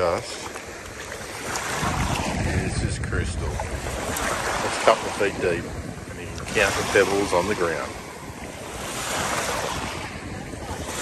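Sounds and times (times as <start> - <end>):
small waves on pebbly shore: 0.0 - 11.0
wind rumbling on microphone: 0.0 - 11.0.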